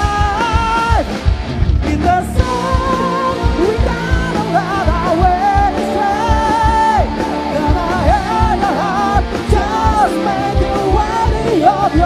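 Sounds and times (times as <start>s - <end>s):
man singing: 0.0s - 1.2s, 1.8s - 12.0s
rock band playing: 0.0s - 12.0s.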